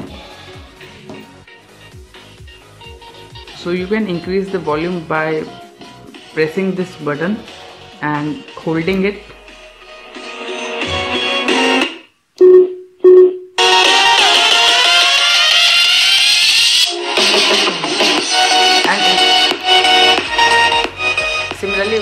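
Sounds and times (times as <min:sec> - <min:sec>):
song through small speaker: 0:00.0 - 0:12.2, 0:13.6 - 0:22.0.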